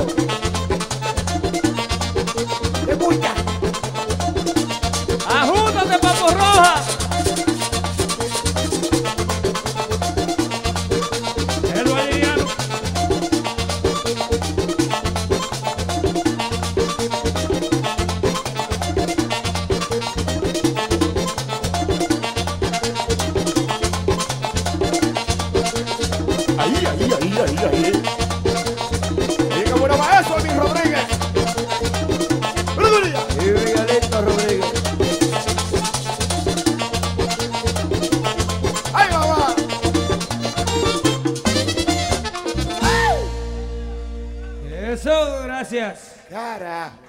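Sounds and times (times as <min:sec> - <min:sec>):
accordion: 0:00.0 - 0:45.3
bass and percussion beat: 0:00.0 - 0:45.4
bending melodic line: 0:11.5 - 0:13.0, 0:39.1 - 0:45.5.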